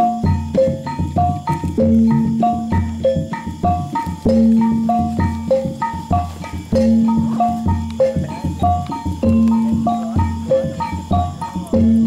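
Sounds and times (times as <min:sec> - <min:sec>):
gamelan ensemble playing: 0:00.0 - 0:12.0
low drum pulse: 0:00.0 - 0:12.0.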